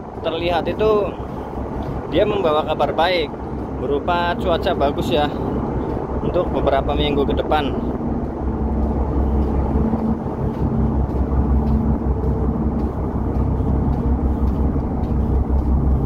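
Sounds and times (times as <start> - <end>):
footsteps on steel deck: 0.0 - 16.0
ship engine drone: 0.0 - 16.0.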